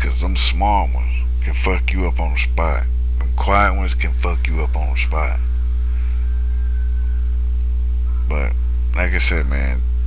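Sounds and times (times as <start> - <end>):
electrical mains hum: 0.0 - 10.0
faint thin high tone: 6.0 - 7.4.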